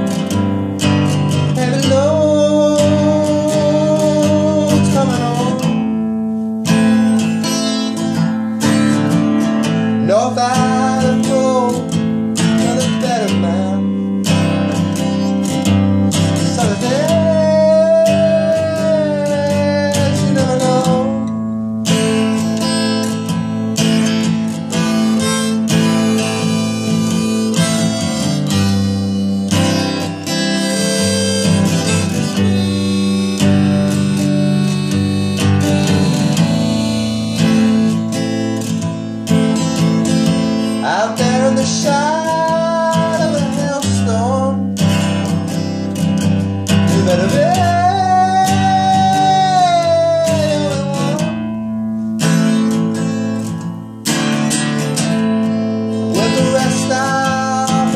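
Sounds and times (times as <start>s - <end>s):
acoustic guitar strumming: 0.0s - 57.9s
bending melody line: 0.0s - 57.9s.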